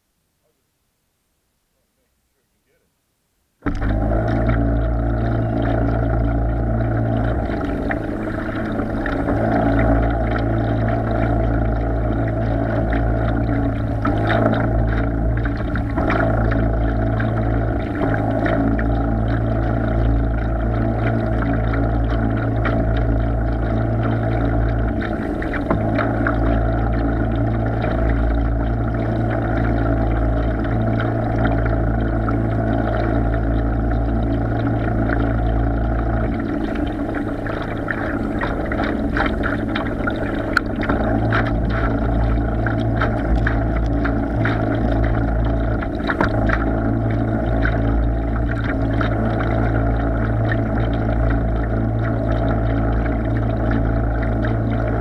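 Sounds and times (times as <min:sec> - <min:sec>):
water splashing against hull: 0:03.6 - 0:55.0
electric boat motor humming: 0:03.7 - 0:55.0.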